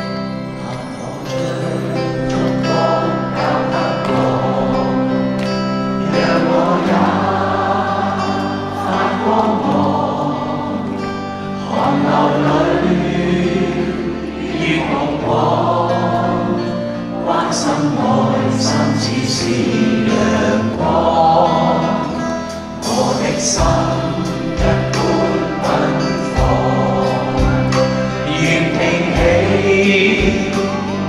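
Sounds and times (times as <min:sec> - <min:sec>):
audience singing along: 0:00.0 - 0:31.0
live band playing: 0:00.0 - 0:31.0
man singing into microphone: 0:17.3 - 0:31.0.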